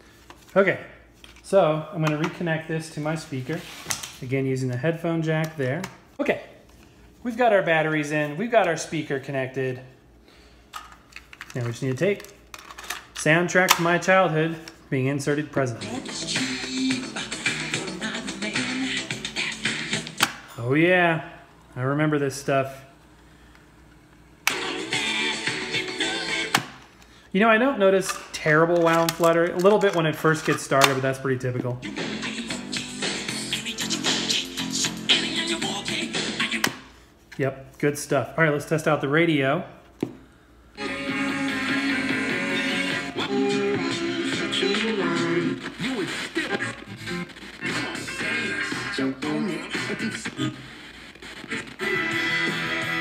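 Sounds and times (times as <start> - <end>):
cassette music through small speaker: 15.4 - 20.5, 22.9 - 26.9, 31.8 - 36.8, 40.8 - 53.0.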